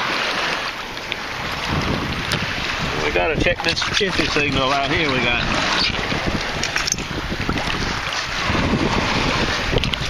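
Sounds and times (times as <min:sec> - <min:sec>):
water sloshing around legs: 0:00.0 - 0:10.0
wind buffeting microphone: 0:01.0 - 0:10.0.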